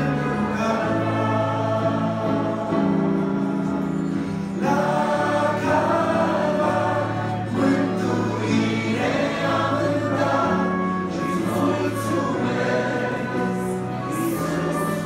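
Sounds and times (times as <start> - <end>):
group singing a hymn: 0.0 - 15.0.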